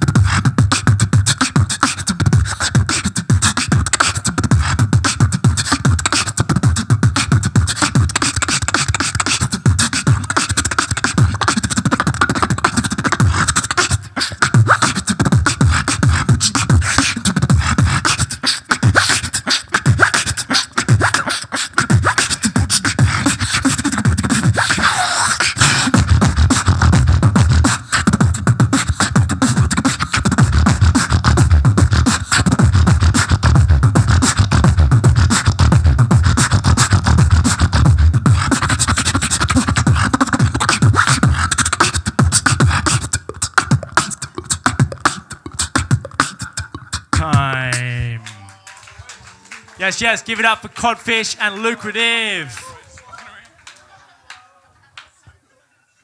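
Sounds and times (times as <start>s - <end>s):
beatboxing into a microphone: 0.0s - 48.6s, 49.7s - 52.8s
pitched vocal glide: 45.1s - 48.5s, 49.8s - 52.8s.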